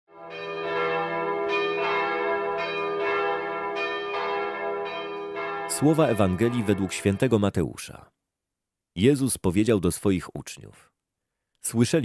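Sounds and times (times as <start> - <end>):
bells ringing: 0.2 - 7.5.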